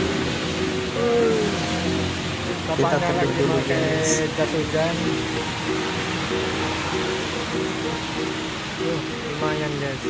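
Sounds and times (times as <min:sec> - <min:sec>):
rain on street: 0:00.0 - 0:10.0
simple melody music: 0:00.0 - 0:10.0.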